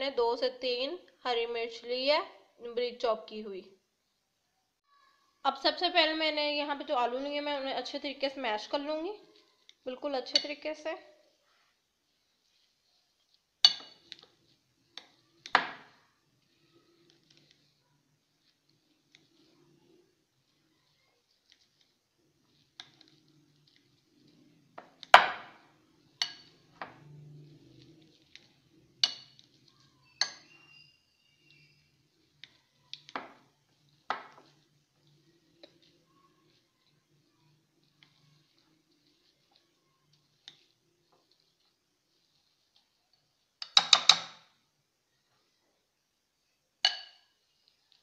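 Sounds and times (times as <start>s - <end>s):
potato masher clinking glass bowl: 29.0s - 31.8s.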